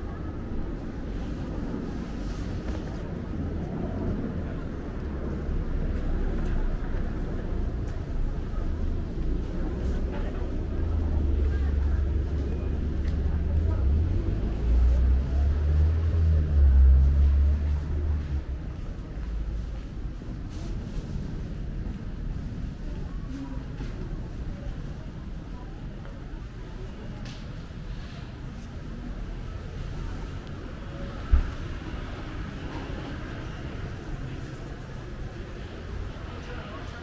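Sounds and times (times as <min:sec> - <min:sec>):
faint voices: 0:00.0 - 0:37.0
low street rumble: 0:00.0 - 0:37.0.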